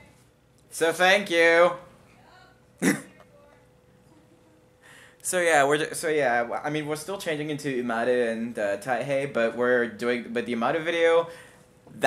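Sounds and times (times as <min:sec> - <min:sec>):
faint room hum: 0:00.0 - 0:12.0
man clearing throat: 0:02.8 - 0:03.2.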